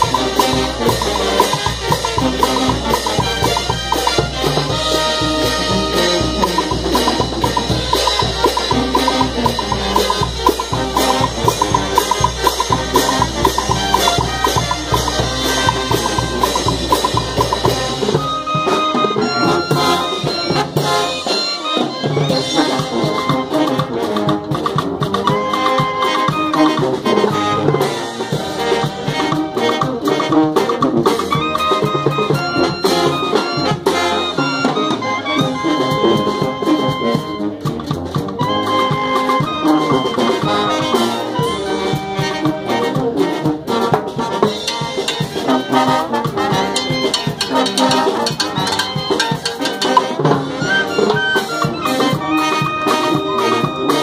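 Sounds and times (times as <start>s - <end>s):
bass drum snare and cymbals: 0.0s - 54.0s
brass band playing: 0.0s - 54.0s.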